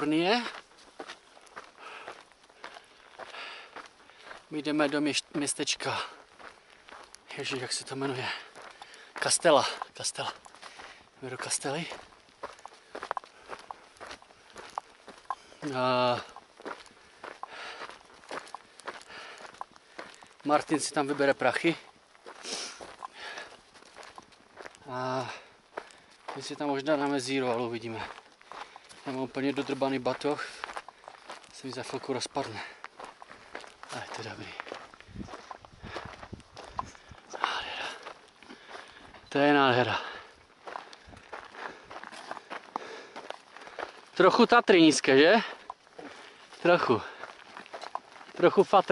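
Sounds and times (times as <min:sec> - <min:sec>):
footsteps on dirt trail: 0:00.0 - 0:48.9.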